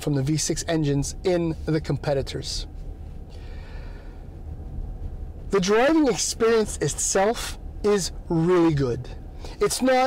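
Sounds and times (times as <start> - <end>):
low rumble in car cabin: 0.0 - 10.0
soft breath: 3.0 - 4.5.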